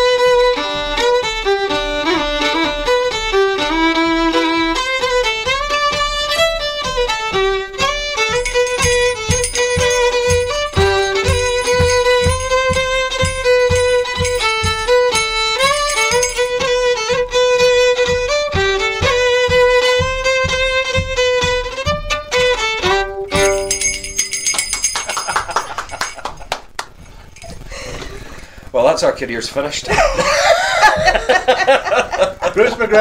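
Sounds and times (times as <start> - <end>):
fiddle playing lively tune: 0.0 - 23.5
steady low beat: 8.3 - 16.6.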